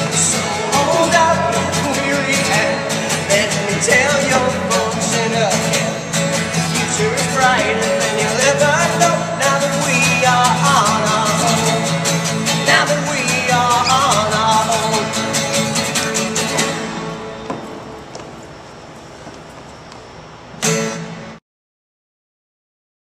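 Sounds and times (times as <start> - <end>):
person singing: 0.0 - 12.0, 12.6 - 15.4
acoustic guitar strumming: 0.0 - 21.4.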